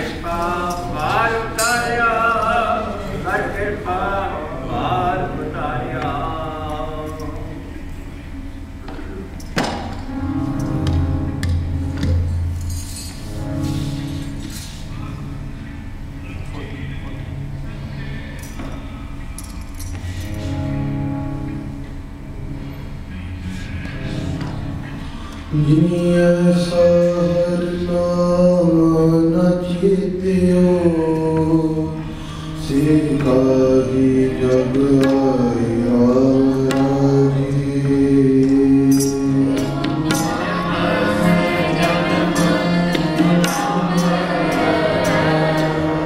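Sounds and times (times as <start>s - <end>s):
person singing: 0.0s - 7.7s, 25.5s - 46.0s
harmonium chords: 10.0s - 18.0s, 20.0s - 29.4s, 30.6s - 46.0s.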